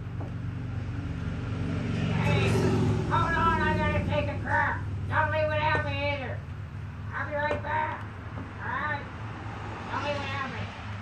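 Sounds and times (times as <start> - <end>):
vehicle engine idling: 0.0 - 11.0
person speaking: 2.0 - 6.5, 7.1 - 9.2.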